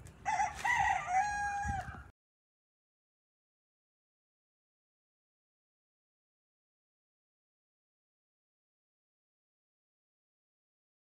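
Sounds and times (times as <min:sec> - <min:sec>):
rooster crowing: 0:00.2 - 0:02.1.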